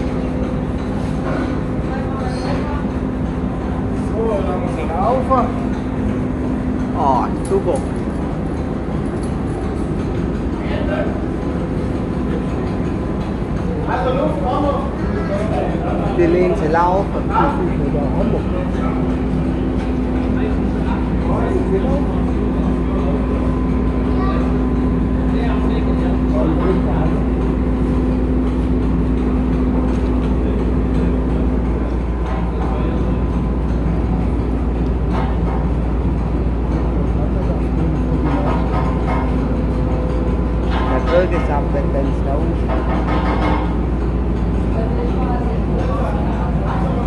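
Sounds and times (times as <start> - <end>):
steady hum: 0.0 - 47.0
steam engine running: 0.0 - 47.0
voices: 10.5 - 47.0.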